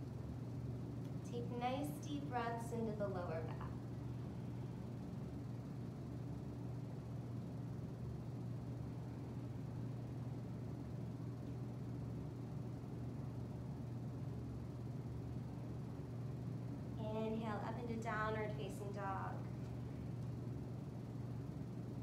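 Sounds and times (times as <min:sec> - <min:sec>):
fan humming: 0:00.0 - 0:22.0.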